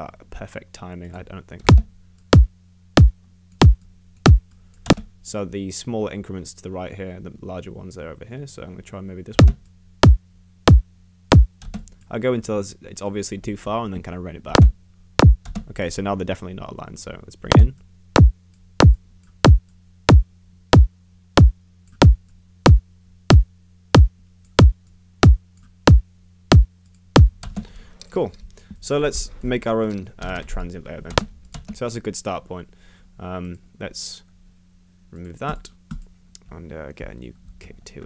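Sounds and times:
faint low hum: 0:00.0 - 0:38.0
electronic kick drum: 0:01.7 - 0:05.0, 0:09.4 - 0:11.6, 0:14.6 - 0:15.4, 0:17.5 - 0:27.4.

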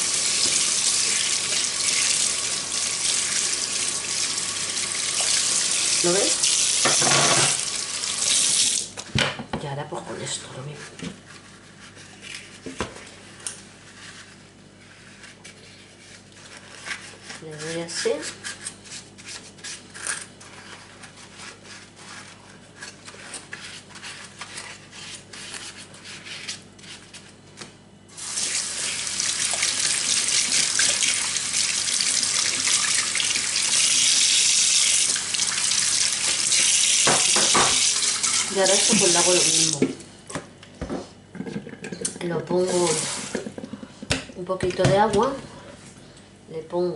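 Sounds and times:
tap water running into sink: 0:00.0 - 0:08.9, 0:28.2 - 0:39.9, 0:42.8 - 0:43.4.

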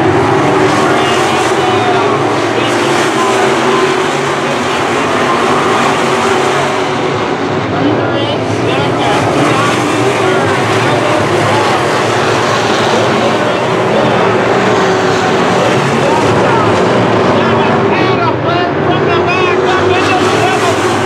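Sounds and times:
race car engines racing: 0:00.0 - 0:21.0.

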